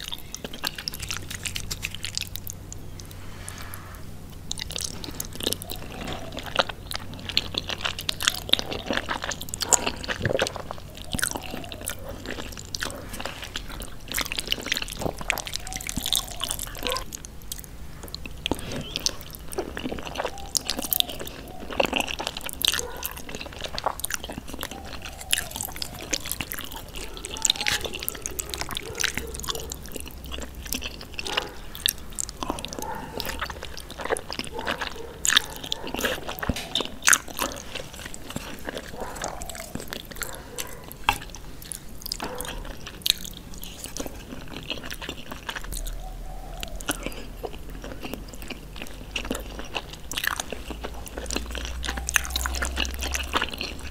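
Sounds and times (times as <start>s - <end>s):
wet chewing and smacking: 0.0s - 53.9s.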